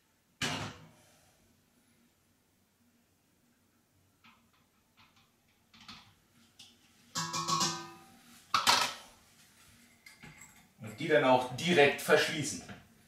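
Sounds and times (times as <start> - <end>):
glass clink: 7.2 - 8.1.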